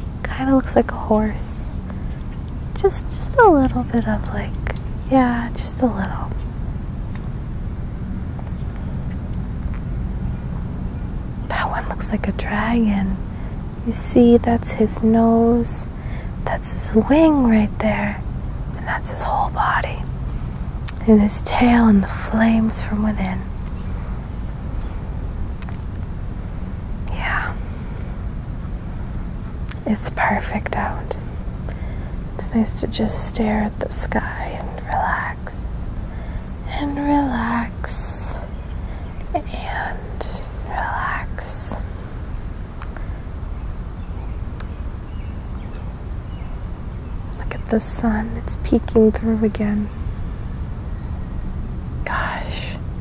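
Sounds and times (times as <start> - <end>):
low outdoor rumble: 0.0 - 53.0
breathy whisper: 27.0 - 28.2, 29.7 - 42.2, 52.0 - 52.8.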